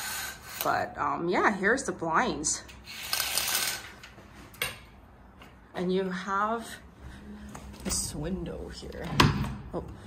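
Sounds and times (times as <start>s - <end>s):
window blinds rattling: 2.9s - 4.1s.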